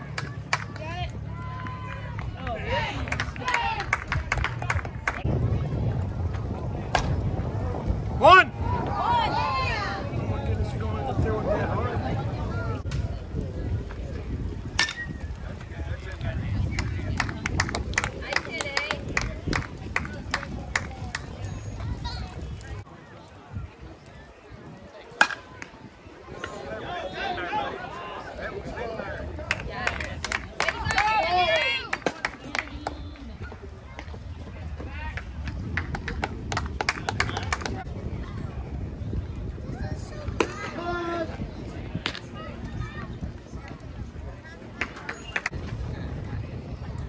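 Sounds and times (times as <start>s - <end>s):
faint voices: 0.0s - 47.0s
spectators clapping: 1.8s - 5.3s, 16.8s - 21.3s, 29.5s - 33.0s, 35.7s - 37.8s
bat hitting ball: 25.2s - 25.7s.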